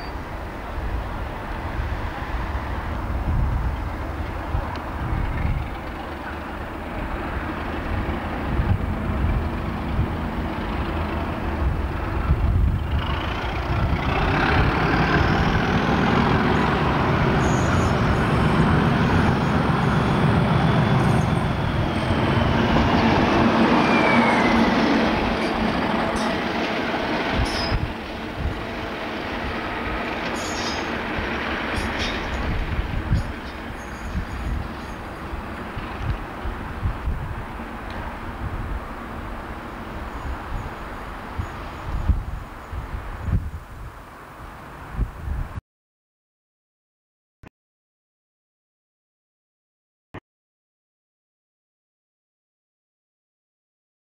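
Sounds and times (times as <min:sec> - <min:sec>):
diesel locomotive engine running: 0:00.0 - 0:43.2
high metallic squeal: 0:17.4 - 0:26.4, 0:27.4 - 0:27.9, 0:30.3 - 0:30.9, 0:33.2 - 0:35.0.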